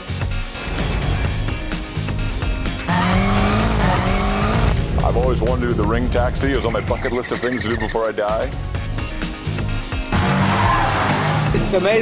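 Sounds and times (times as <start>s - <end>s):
background music: 0.0s - 12.0s
car engine at high revs: 2.8s - 4.8s.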